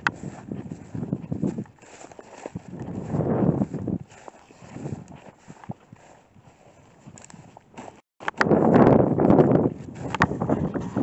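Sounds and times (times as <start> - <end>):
footsteps through dry grass: 0.0 - 11.0.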